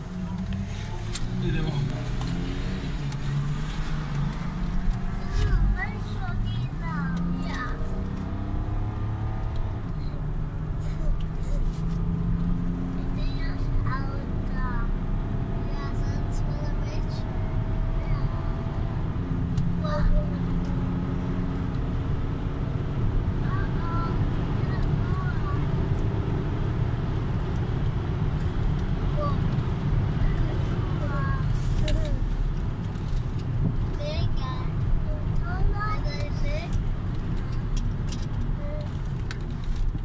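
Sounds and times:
car engine accelerating: 0.0 - 40.0.

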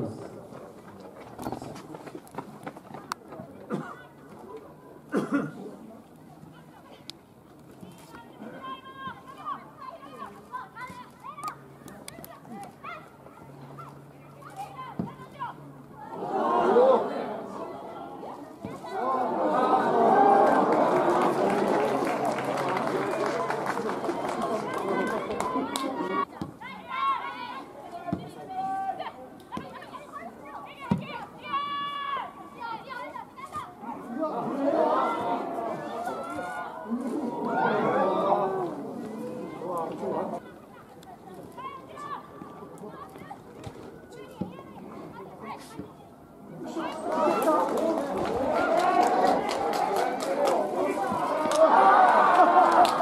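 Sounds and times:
voices calling and chattering: 0.0 - 53.0.

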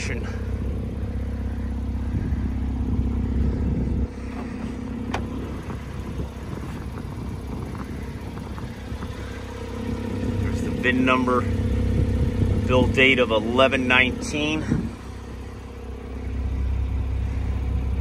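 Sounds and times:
low engine hum: 0.0 - 18.0.

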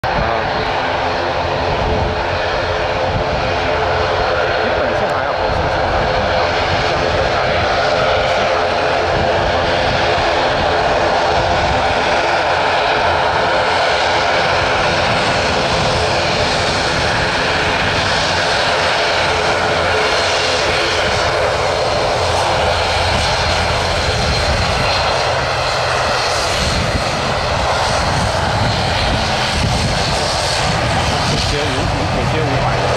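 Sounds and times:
turboprop propeller drone: 0.0 - 32.9.

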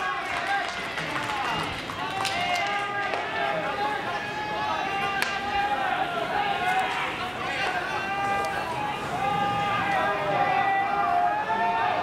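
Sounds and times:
crowd calling and shouting: 0.0 - 12.0.

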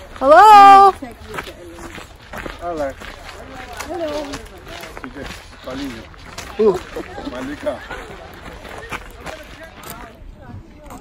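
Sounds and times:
footsteps on dirt path: 0.0 - 11.0
people talking: 0.0 - 11.0.

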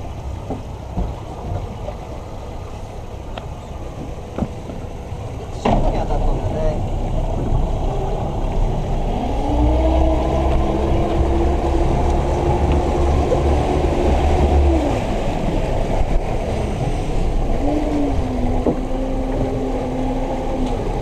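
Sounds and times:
boat engine revving: 0.0 - 21.0.

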